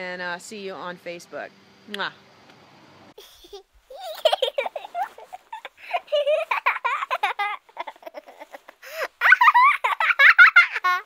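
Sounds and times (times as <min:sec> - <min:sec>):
small child giggling and babbling: 0:03.2 - 0:11.0.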